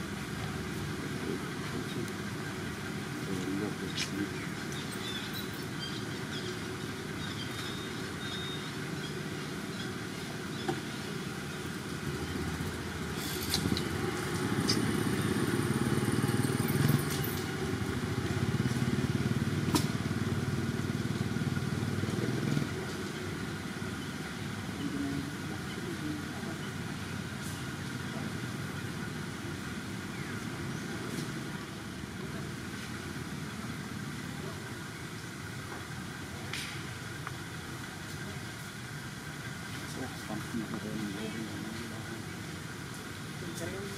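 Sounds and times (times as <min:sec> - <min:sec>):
small engine running: 0:11.2 - 0:26.9.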